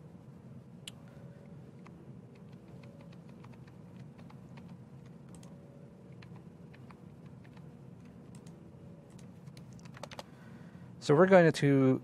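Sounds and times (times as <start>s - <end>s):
computer keyboard typing: 2.3s - 10.3s.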